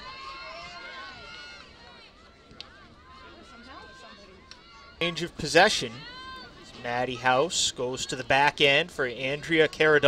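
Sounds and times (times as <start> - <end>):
players calling out: 4.5 - 10.0.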